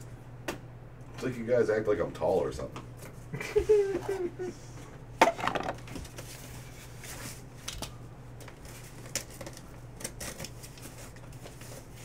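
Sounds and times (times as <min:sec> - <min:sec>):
person laughing: 0:03.3 - 0:04.8.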